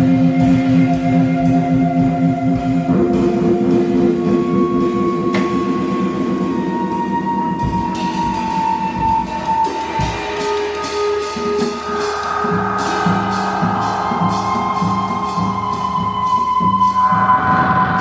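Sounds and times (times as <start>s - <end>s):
cymbal strokes: 0.0s - 18.0s
drum hits: 11.4s - 18.0s.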